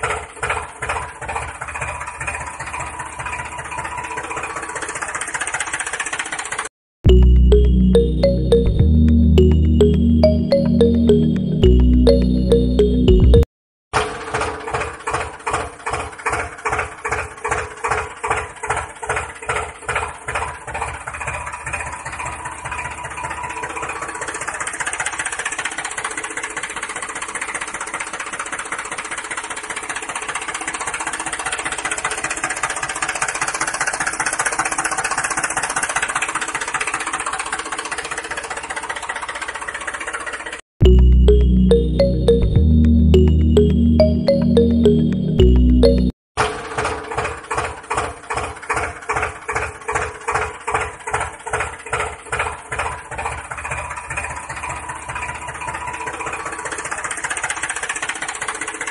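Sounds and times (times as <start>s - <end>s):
tractor engine chugging: 0.0s - 6.3s
background music: 7.1s - 13.5s, 40.8s - 46.1s.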